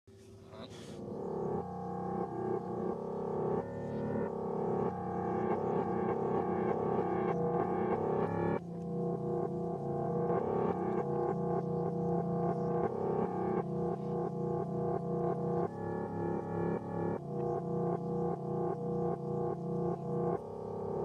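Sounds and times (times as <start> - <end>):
synthesizer keyboard music: 0.4 - 21.0.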